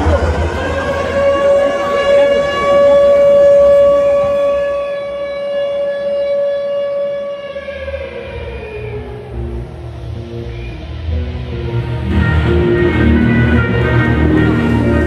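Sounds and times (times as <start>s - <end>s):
siren-like tone: 0.0s - 11.4s
bass beat: 7.5s - 15.0s
pop song over loudspeakers: 11.7s - 15.0s.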